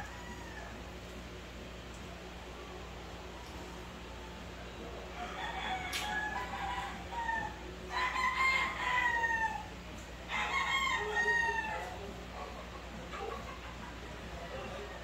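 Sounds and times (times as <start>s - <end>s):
roosters crowing: 0.0s - 1.4s, 2.5s - 12.3s.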